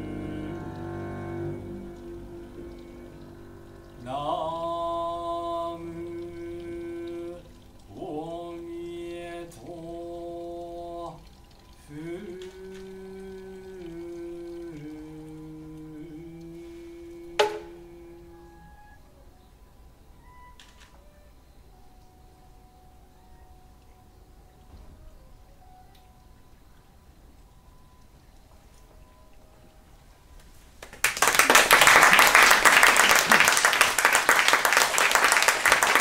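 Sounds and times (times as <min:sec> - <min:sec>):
chanted vocal note: 0:00.0 - 0:19.8
soft sustained low tone: 0:00.0 - 0:19.8.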